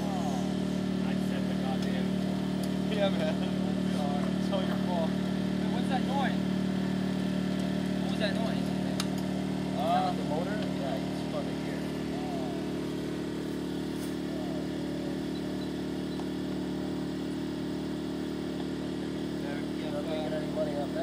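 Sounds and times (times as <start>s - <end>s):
small engine running steadily: 0.0s - 21.0s.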